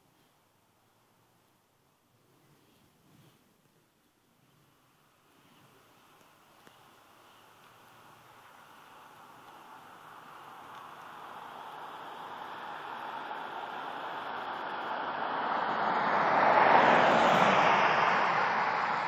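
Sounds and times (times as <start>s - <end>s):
fighter jet flying over: 12.4s - 19.0s.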